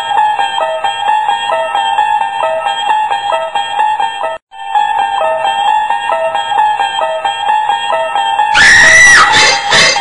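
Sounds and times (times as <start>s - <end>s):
loud high-pitched scream: 8.5s - 10.0s.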